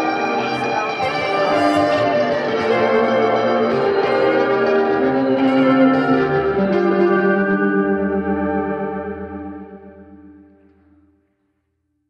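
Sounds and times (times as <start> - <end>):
electric guitar chord with chorus: 0.0 - 11.1.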